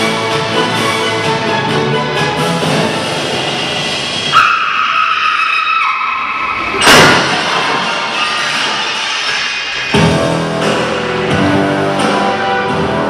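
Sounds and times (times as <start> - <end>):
loud crash-like burst: 6.6 - 10.4.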